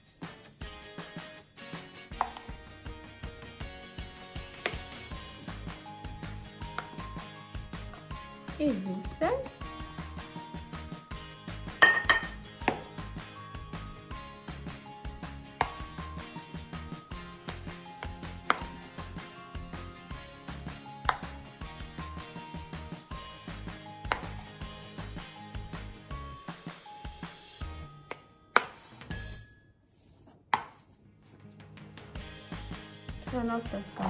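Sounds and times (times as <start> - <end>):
background music: 0.0 - 30.1, 30.7 - 34.0
spoon knocking against bowl: 11.8 - 12.8.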